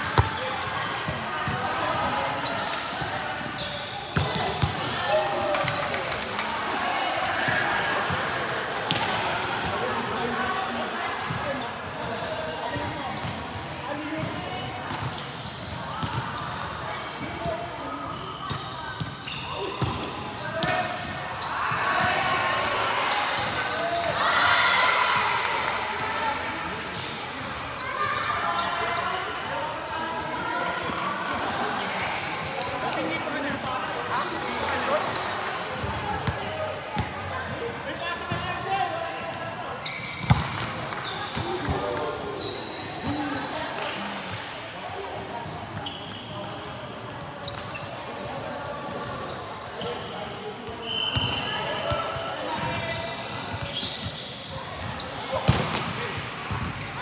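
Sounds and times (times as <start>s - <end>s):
players calling and chattering: 0.0s - 57.0s.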